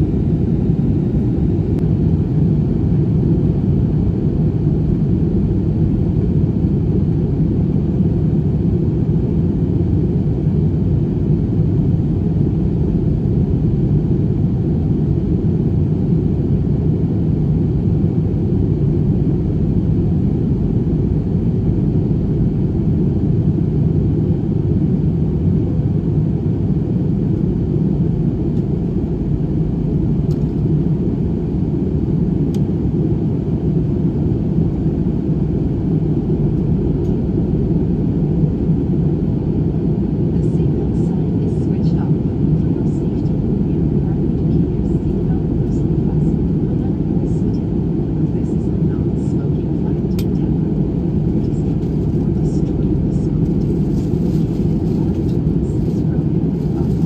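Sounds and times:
airliner cabin engine rumble: 0:00.0 - 0:57.0.

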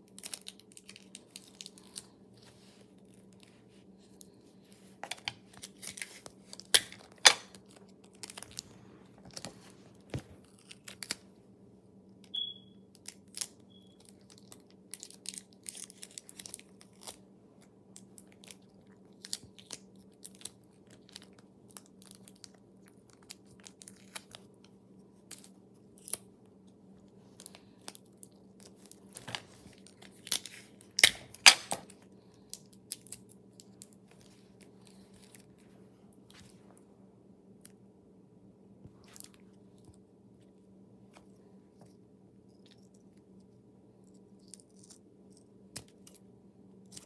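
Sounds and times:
paper and tape crinkling: 0:00.0 - 0:11.3, 0:13.0 - 0:17.2, 0:17.9 - 0:26.3, 0:27.0 - 0:36.7
faint steady hum: 0:00.0 - 0:47.0.

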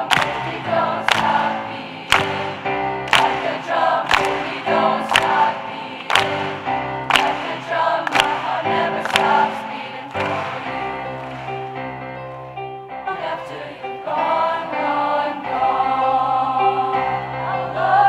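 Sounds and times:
choir singing: 0:00.0 - 0:11.8, 0:13.0 - 0:18.0
hands clapping on the beat: 0:00.0 - 0:12.0.

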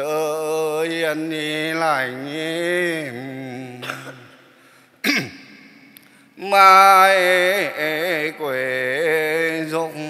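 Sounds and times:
chanting into microphone: 0:00.0 - 0:04.5, 0:06.4 - 0:10.0
man clearing throat: 0:03.8 - 0:05.5.

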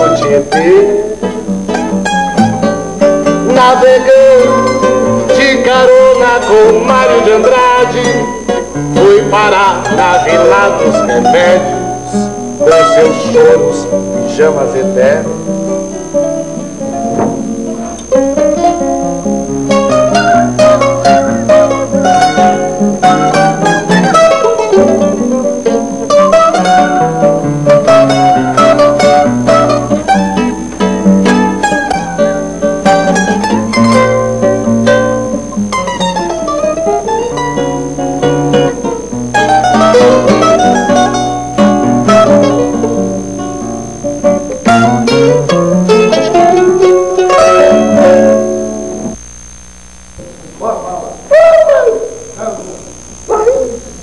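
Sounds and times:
mandolin melody: 0:00.0 - 0:49.2
acoustic guitar chords: 0:00.0 - 0:54.0.

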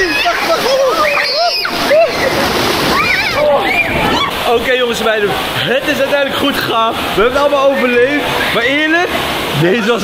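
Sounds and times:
people shrieking and shouting: 0:00.0 - 0:04.5
rushing churning water splashing: 0:00.0 - 0:10.0.

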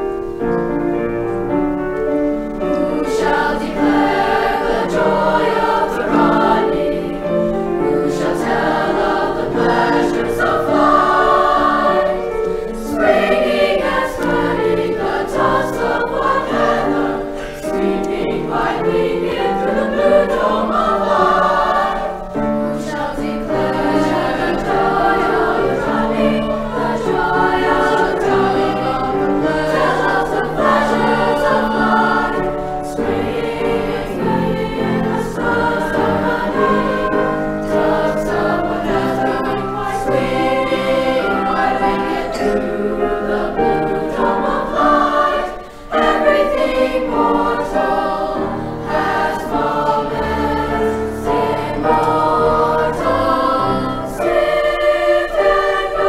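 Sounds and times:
choir singing: 0:00.0 - 0:56.0
piano accompaniment: 0:00.0 - 0:56.0.

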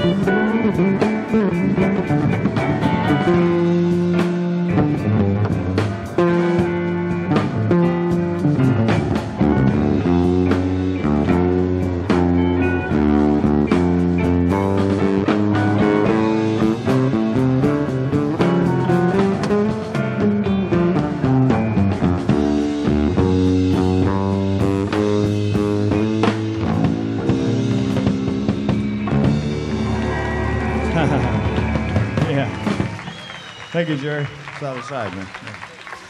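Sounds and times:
electric bass guitar solo: 0:00.0 - 0:33.7.

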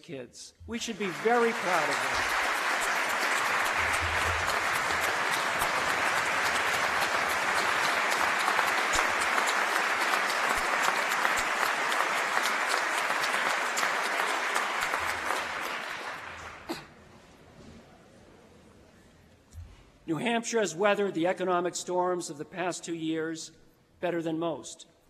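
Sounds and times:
audience applauding: 0:00.7 - 0:16.9.

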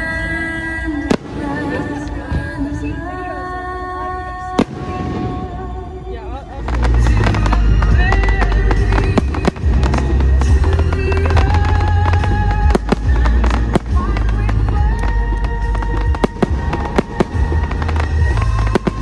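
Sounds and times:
loud music with sung notes: 0:00.0 - 0:19.0
fireworks bangs and crackles: 0:01.0 - 0:03.0, 0:04.5 - 0:19.0.

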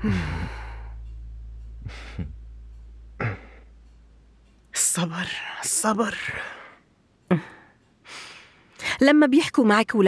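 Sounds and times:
breathy mmm sigh: 0:00.0 - 0:01.1, 0:03.2 - 0:03.7
low droning background music: 0:00.0 - 0:08.7.

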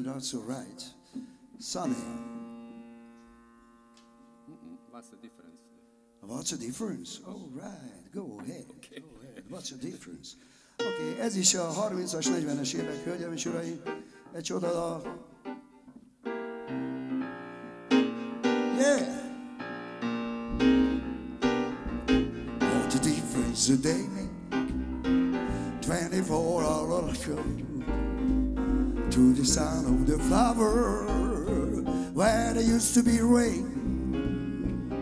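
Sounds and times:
grand piano chord ringing: 0:00.4 - 0:06.5, 0:10.8 - 0:15.6, 0:16.2 - 0:35.0
person's voice: 0:10.9 - 0:13.8, 0:18.8 - 0:19.3, 0:22.7 - 0:24.3.

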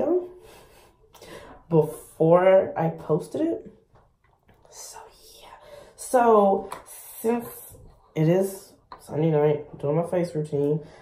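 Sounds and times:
woman whispering: 0:04.6 - 0:06.2.

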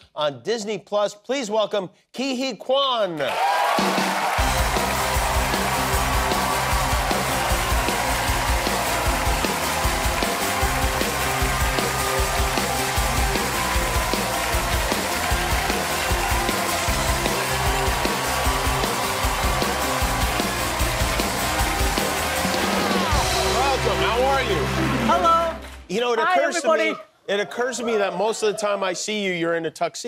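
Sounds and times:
audience cheering and applauding: 0:03.2 - 0:26.8
live band playing upbeat music: 0:03.8 - 0:25.8.

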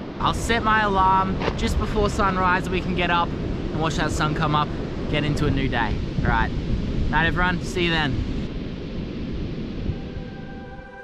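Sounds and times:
surf washing on beach: 0:00.0 - 0:11.0
wind rumbling on microphone: 0:00.0 - 0:11.0.

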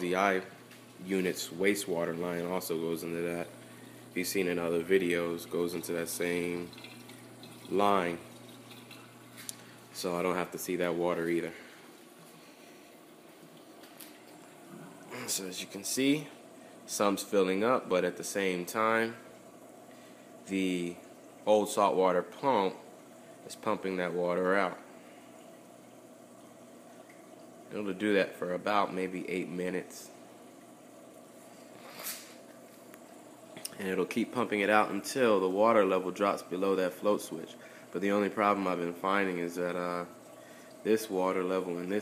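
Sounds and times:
water running into aquarium sump: 0:00.0 - 0:42.0.

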